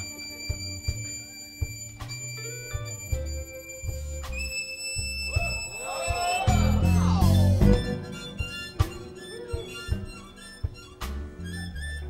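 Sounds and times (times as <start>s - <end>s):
bass notes: 0.0s - 12.0s
harmonica high notes: 0.0s - 12.0s
drum hits: 5.3s - 10.9s.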